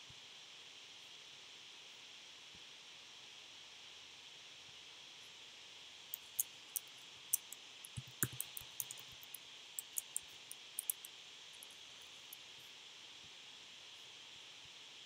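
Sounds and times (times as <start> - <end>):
faint hiss: 0.0 - 15.0
laptop keyboard key clicks: 6.2 - 11.1.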